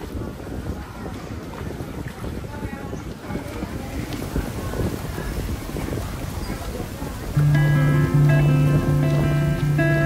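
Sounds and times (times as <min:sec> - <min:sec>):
water splashing from swimmers: 0:00.0 - 0:10.0
wind buffeting microphone: 0:00.0 - 0:10.0.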